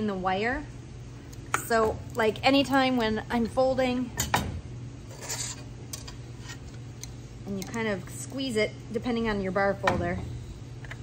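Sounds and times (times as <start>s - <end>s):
metal sheet scraping: 5.1s - 5.7s.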